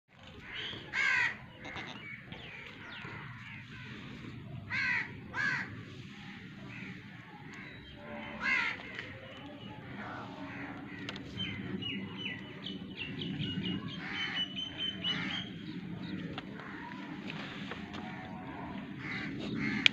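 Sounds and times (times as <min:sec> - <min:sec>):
crows cawing: 0:00.4 - 0:05.8, 0:06.6 - 0:09.2, 0:09.9 - 0:11.6, 0:15.1 - 0:15.5, 0:16.6 - 0:19.9.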